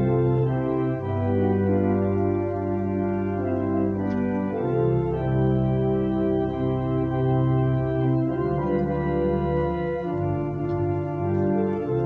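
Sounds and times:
organ playing a hymn: 0.0 - 12.0.

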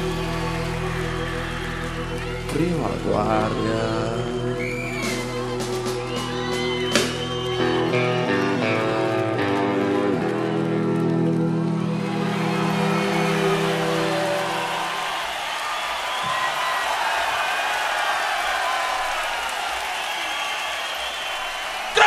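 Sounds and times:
rock band closing chord: 0.0 - 15.3
crowd cheering and applauding: 0.0 - 22.0.

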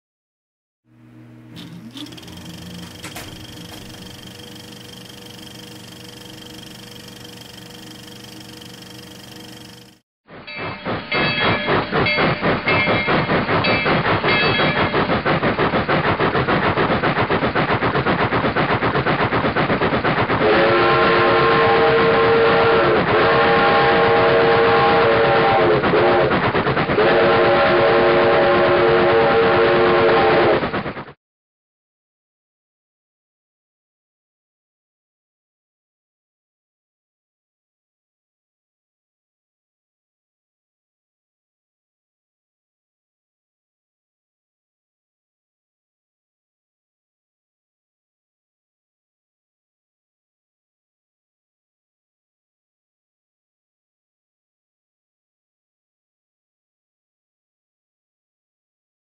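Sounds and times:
steady hum with held tones: 0.9 - 12.0
steam locomotive exhaust chuffs: 1.3 - 31.0
steam locomotive whistle: 1.5 - 15.1, 20.3 - 30.7.

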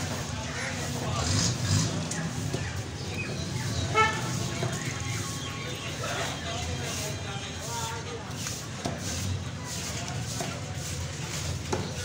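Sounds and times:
low traffic rumble: 0.0 - 12.0
voices: 0.0 - 12.0
vehicle horn toot: 3.9 - 4.2.

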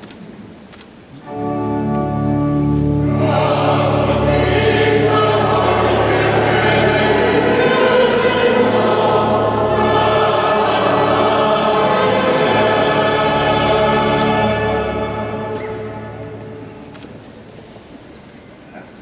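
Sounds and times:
organ notes: 1.2 - 17.3
choir singing a hymn: 1.9 - 16.9.

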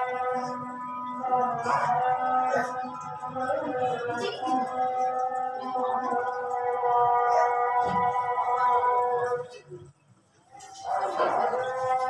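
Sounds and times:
call to prayer over loudspeaker: 0.0 - 12.0.

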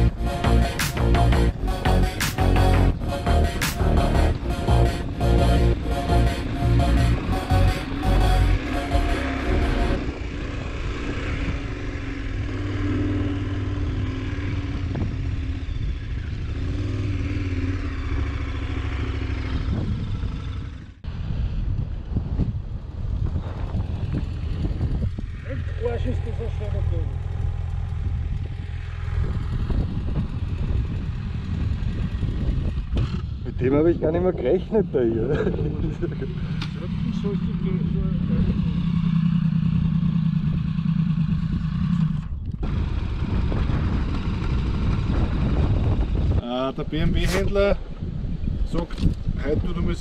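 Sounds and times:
wind noise on microphone: 0.0 - 8.2, 9.9 - 17.2, 19.4 - 26.0, 27.8 - 36.6, 38.2 - 50.0
motorcycle engine at low revs: 0.0 - 50.0.

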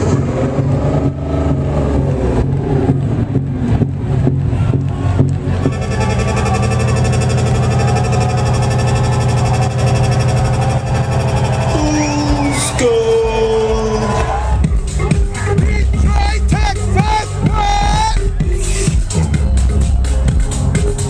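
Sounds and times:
synth sweep: 0.0 - 13.2
loud electronic dance music: 0.0 - 21.0
steady buzzing tone: 5.5 - 12.6.

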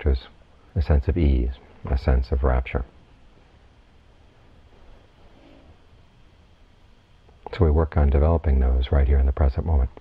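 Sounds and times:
hum: 0.0 - 10.0
low steady hiss: 0.0 - 10.0.

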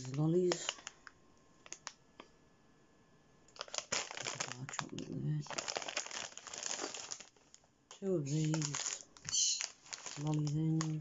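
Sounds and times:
plastic packets crinkling: 0.0 - 2.0, 3.5 - 11.0.

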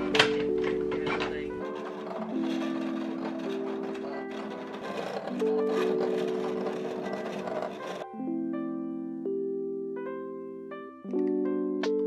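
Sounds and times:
cutting machine running: 0.0 - 8.1
background music of held chords: 0.0 - 12.0.

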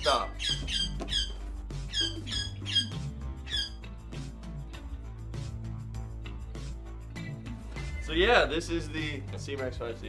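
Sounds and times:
pet squeaky chirps: 0.0 - 3.9
background music with low bass: 0.0 - 10.0.

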